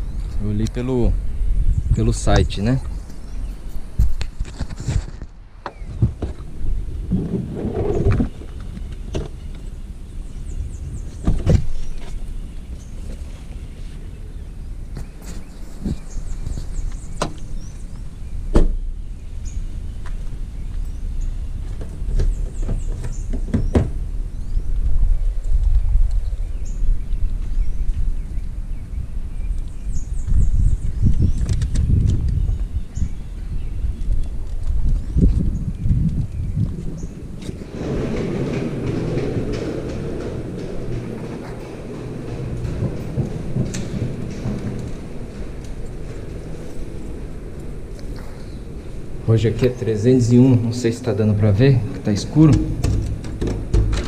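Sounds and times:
wind rumble on microphone: 0:00.0 - 0:54.0
car doors and boot thudding: 0:18.5 - 0:18.8, 0:52.5 - 0:54.0.

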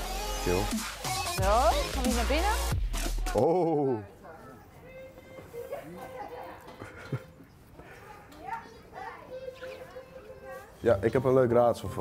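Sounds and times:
faint background voices: 0:03.3 - 0:12.0
young child's voice: 0:07.8 - 0:10.8.

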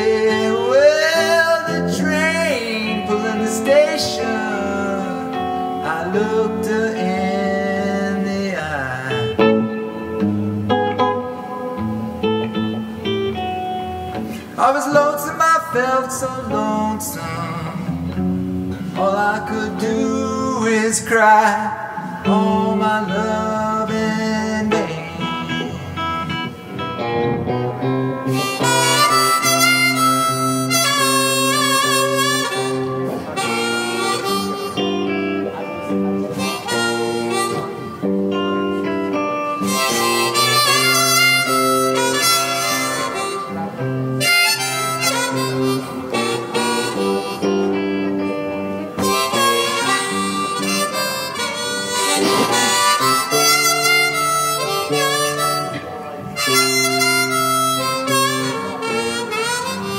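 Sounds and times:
blues harmonica: 0:00.0 - 0:59.9
electric guitar rhythm: 0:00.0 - 0:59.9.

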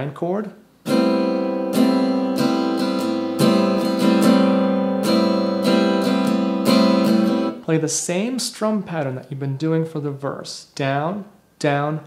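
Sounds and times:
acoustic guitar strumming: 0:00.8 - 0:07.7.

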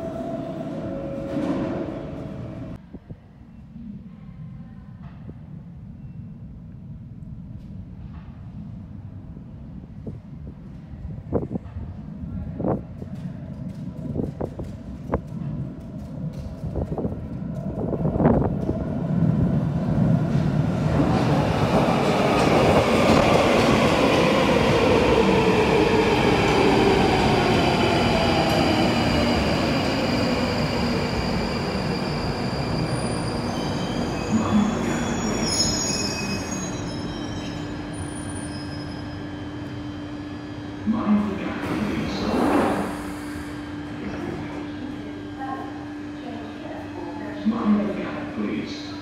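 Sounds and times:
train rumble: 0:00.0 - 0:35.6
wheel and brake squeals: 0:34.8 - 0:39.5.

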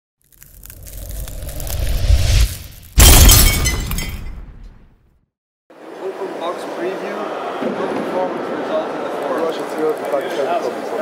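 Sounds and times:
glass shattering: 0:02.7 - 0:04.8.

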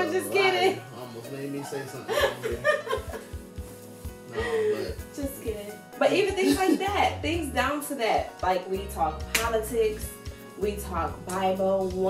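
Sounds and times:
background music with low beat: 0:00.0 - 0:12.0
man and woman laughing: 0:01.6 - 0:03.4, 0:06.3 - 0:07.0.

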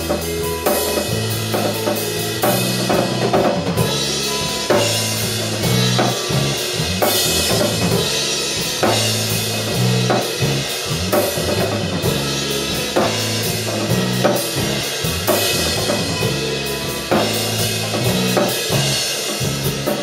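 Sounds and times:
drum kit with cymbals: 0:00.0 - 0:20.0
electric bass: 0:00.0 - 0:20.0
electric guitar: 0:00.0 - 0:20.0.

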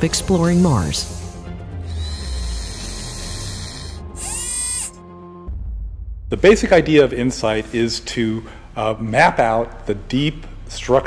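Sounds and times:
background music: 0:00.0 - 0:11.0
mechanical whirring: 0:01.9 - 0:05.0
low rumble: 0:05.3 - 0:10.0.

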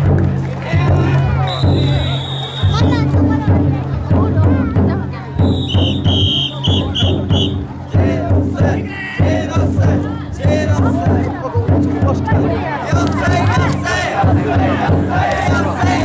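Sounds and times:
large drum beaten slowly: 0:00.0 - 0:16.0
people shouting and chanting: 0:00.4 - 0:16.0
whistle blasts: 0:01.4 - 0:02.8, 0:05.4 - 0:07.6.

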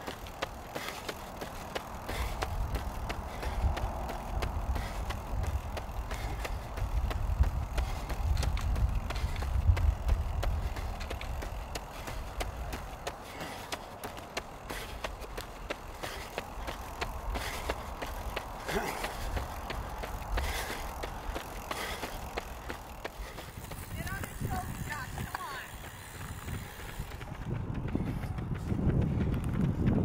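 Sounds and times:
running footsteps on asphalt: 0:00.0 - 0:30.0
wind and road noise: 0:00.0 - 0:30.0.

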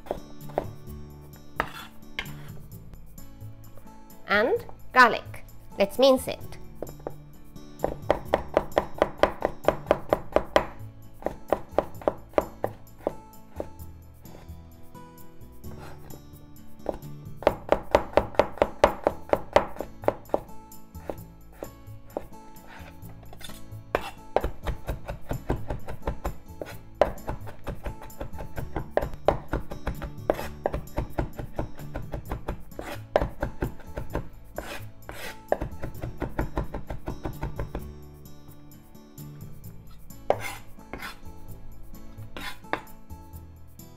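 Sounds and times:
knife chopping on wooden board: 0:00.0 - 0:00.8, 0:01.6 - 0:02.5, 0:07.8 - 0:14.4, 0:16.8 - 0:37.9, 0:40.3 - 0:41.2, 0:42.4 - 0:43.0
background music: 0:00.0 - 0:43.9.

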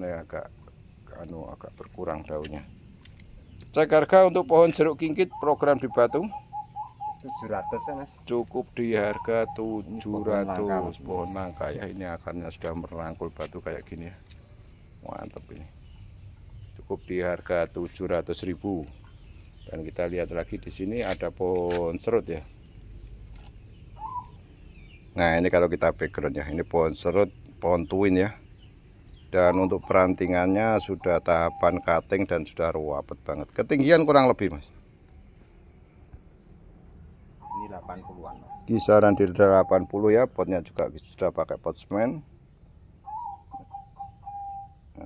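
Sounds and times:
bird calling: 0:00.0 - 0:34.7, 0:37.2 - 0:42.2, 0:42.9 - 0:45.0
low outdoor rumble: 0:00.0 - 0:45.0
bird call: 0:04.2 - 0:12.0, 0:23.4 - 0:25.0, 0:29.4 - 0:32.3, 0:37.4 - 0:40.4, 0:43.0 - 0:45.0
thin high bird chirps: 0:18.1 - 0:25.1.

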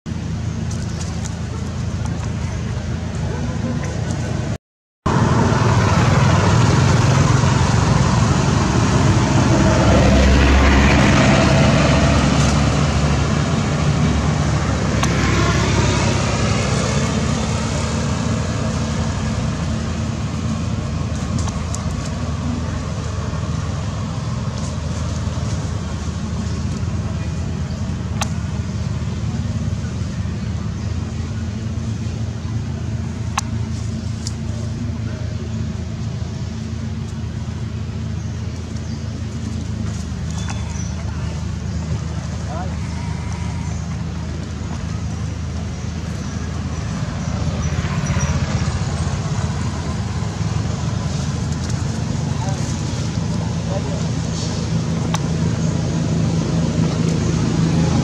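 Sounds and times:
traffic engine hum: 0:00.1 - 0:58.0
vehicle passing: 0:00.8 - 0:36.1, 0:39.2 - 0:58.0.

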